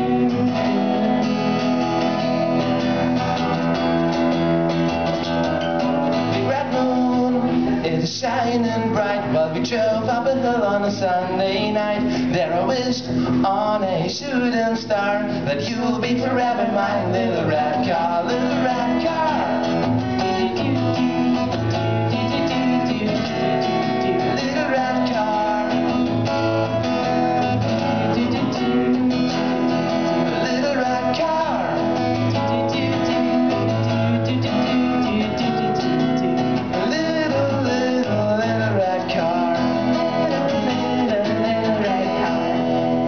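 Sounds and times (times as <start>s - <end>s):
acoustic guitar strumming: 0.0s - 43.0s
person singing wordless melody: 5.6s - 26.2s, 27.6s - 43.0s.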